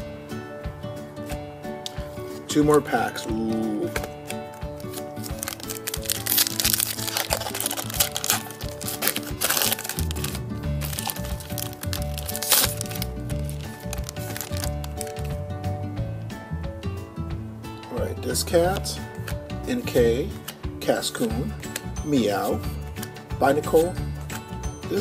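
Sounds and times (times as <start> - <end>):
background music: 0.0 - 25.0
foil wrapper crinkling: 4.6 - 15.4.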